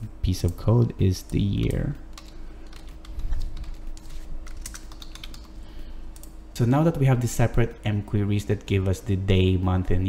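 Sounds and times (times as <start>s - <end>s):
computer keyboard typing: 1.2s - 6.4s.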